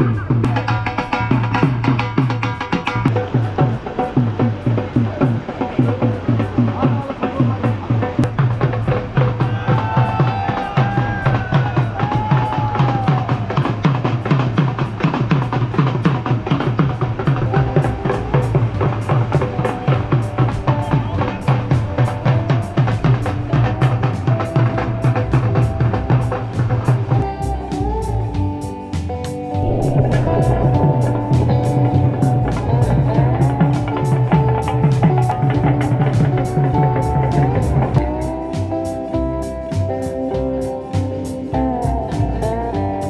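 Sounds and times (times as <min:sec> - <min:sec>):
music with fast drum beat: 0:00.0 - 0:43.0.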